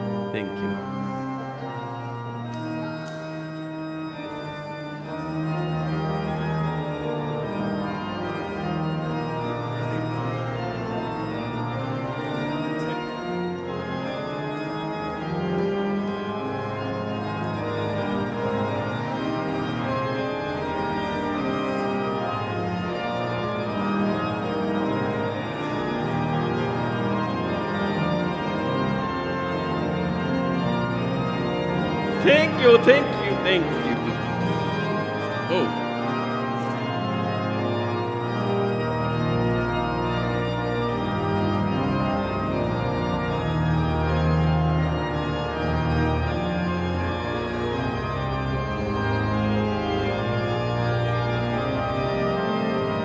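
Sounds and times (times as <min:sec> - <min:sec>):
church organ chords: 0:00.0 - 0:53.0.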